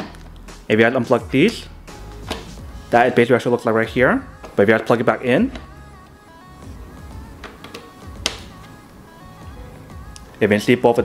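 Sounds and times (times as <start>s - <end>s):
background music with steady tones: 0.0s - 11.0s.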